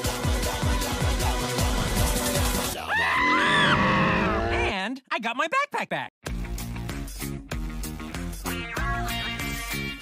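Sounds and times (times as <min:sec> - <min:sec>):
cartoon bear roar: 0:02.8 - 0:04.7
screaming: 0:02.8 - 0:04.7.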